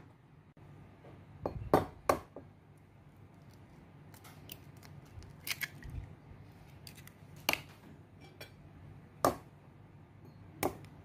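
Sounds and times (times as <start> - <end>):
eggshell clicks and crackles: 3.2 - 7.8.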